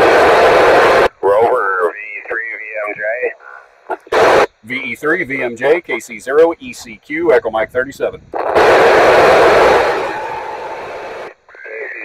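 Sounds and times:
radio static hissing: 0.0 - 12.0.

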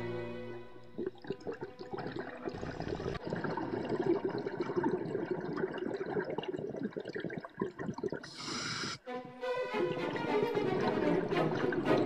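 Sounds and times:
underwater exhaled bubbles rushing: 0.8 - 9.0, 10.6 - 12.0
regulator inhalation hiss: 8.3 - 9.1.

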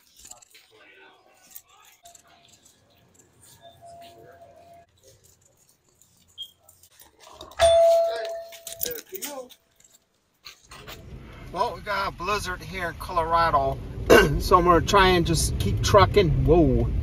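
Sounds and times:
faint rustling and shuffling: 0.0 - 11.6
electronic door-entry chime: 7.6 - 8.8.

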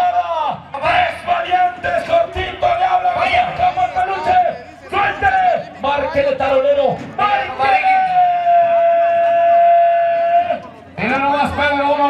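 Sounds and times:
crowd: 0.0 - 12.0
man shouting long calls: 7.2 - 10.6.

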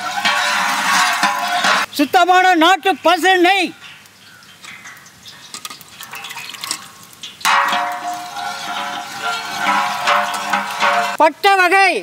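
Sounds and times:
oil pouring into metal vessel: 5.4 - 11.2.

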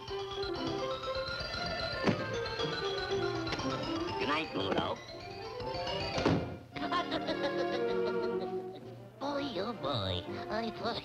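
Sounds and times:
background music: 0.0 - 11.0
door slamming shut: 6.1 - 6.6.

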